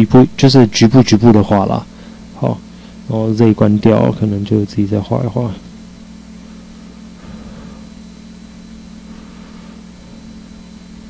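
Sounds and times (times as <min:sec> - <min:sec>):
low electrical hum: 0:00.0 - 0:11.0
even hiss: 0:06.5 - 0:10.5.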